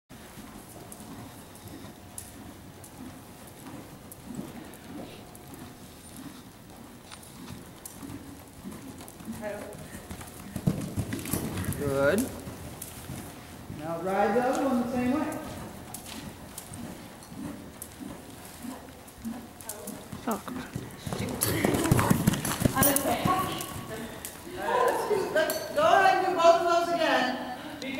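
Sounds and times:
horse hoofbeats on soft dirt: 0:00.1 - 0:25.1.

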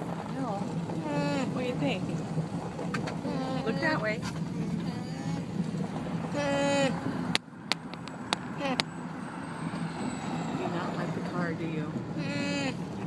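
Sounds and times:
road and engine noise in car: 0:00.0 - 0:13.0
pitched hum-like call: 0:03.2 - 0:04.0, 0:06.3 - 0:07.2, 0:12.2 - 0:12.9.

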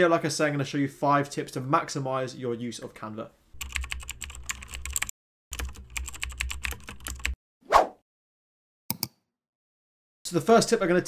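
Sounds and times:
rapid keyboard typing clicks: 0:03.6 - 0:07.4.

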